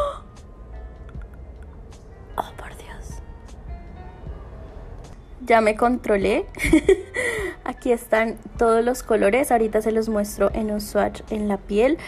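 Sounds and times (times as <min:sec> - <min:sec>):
woman gasping: 0:00.0 - 0:00.4, 0:07.1 - 0:07.6
faint background music: 0:00.0 - 0:12.0
whispering: 0:02.4 - 0:03.2.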